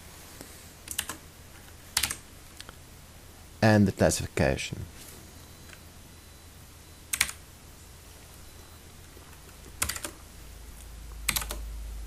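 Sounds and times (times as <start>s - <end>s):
computer keyboard typing: 0.9s - 1.2s, 2.0s - 2.2s, 7.1s - 7.4s, 9.2s - 10.2s, 11.2s - 11.7s.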